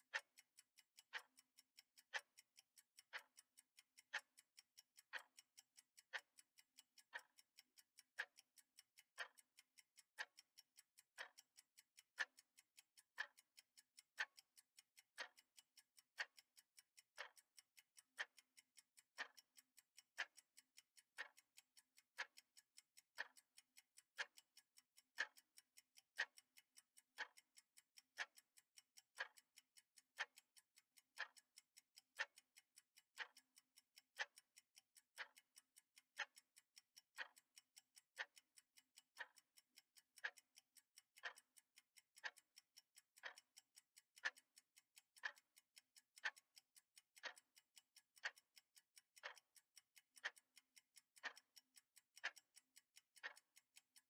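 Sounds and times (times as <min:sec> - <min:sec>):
clock ticking: 0:00.0 - 0:54.0.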